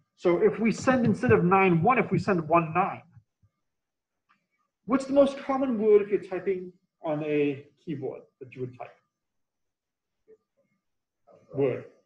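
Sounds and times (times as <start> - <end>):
man lecturing: 0.2 - 3.1, 4.8 - 9.0, 11.4 - 12.0.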